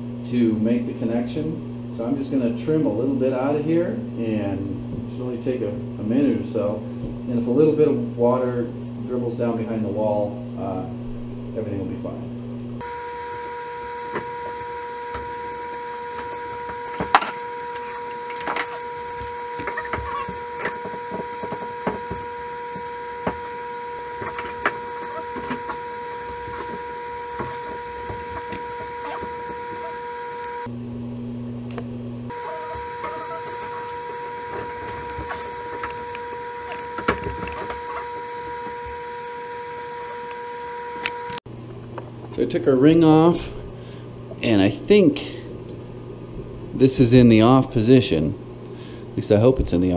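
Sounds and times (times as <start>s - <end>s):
steady high-pitched hum: 0.0s - 49.9s.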